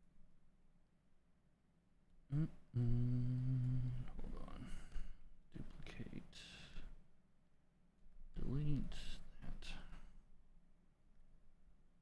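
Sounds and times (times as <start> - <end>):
man humming: 2.3 - 4.9.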